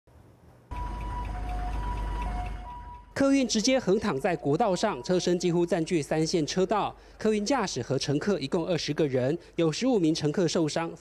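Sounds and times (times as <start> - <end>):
heavy vehicles rumbling: 0.7 - 3.4
two-tone electronic warning signal: 0.7 - 5.9.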